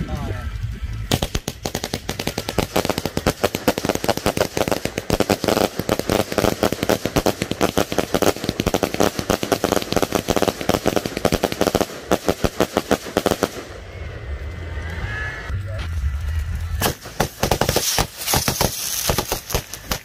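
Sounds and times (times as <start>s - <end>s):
fireworks bangs and crackles: 0.0s - 15.0s, 15.6s - 20.0s.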